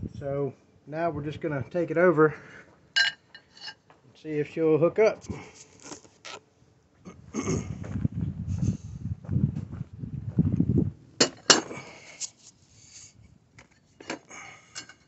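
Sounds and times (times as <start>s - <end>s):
footsteps on grass and mulch: 7.8s - 10.6s
metal parts clinking: 14.0s - 15.0s.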